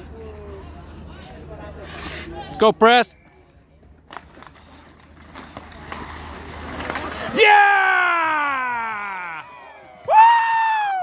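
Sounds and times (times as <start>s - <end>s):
hockey sticks clacking: 3.5s - 7.4s
skates scraping on ice: 4.0s - 7.6s.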